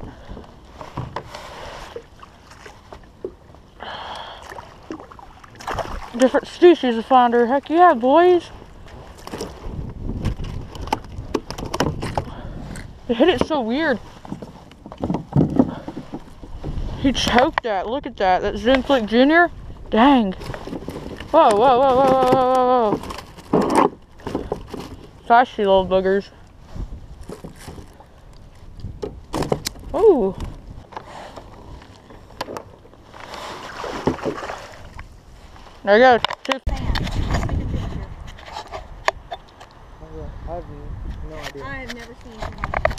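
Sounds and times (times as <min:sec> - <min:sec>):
water noise: 0:00.0 - 0:42.9
wind: 0:00.0 - 0:42.9.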